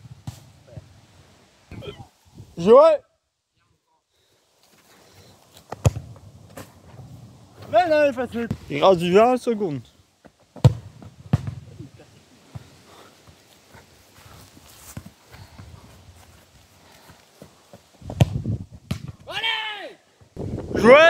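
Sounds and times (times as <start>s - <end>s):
footsteps on grass: 4.5s - 8.7s, 12.4s - 18.9s
football kicked: 5.7s - 7.1s, 10.6s - 11.7s, 18.0s - 19.3s
person shouting: 19.3s - 20.0s, 20.8s - 21.0s.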